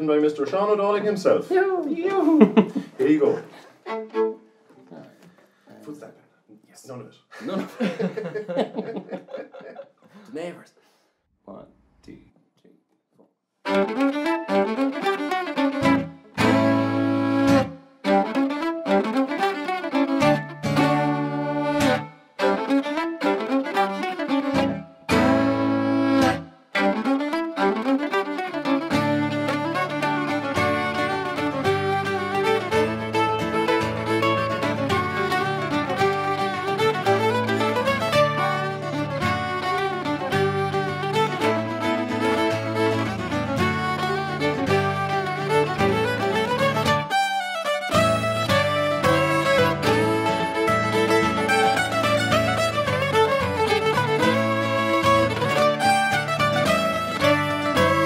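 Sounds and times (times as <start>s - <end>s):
fiddle melody: 0.0s - 5.6s, 13.6s - 58.0s
electric mandolin: 13.6s - 58.0s
acoustic guitar: 13.7s - 58.0s.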